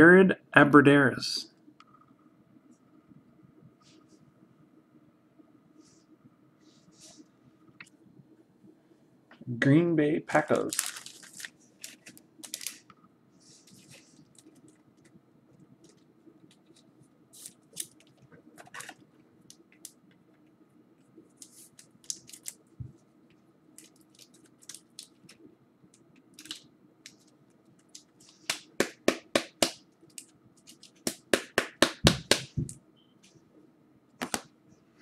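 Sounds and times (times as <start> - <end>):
foil wrapper crinkling: 10.4 - 12.9, 21.4 - 22.7, 23.8 - 25.4.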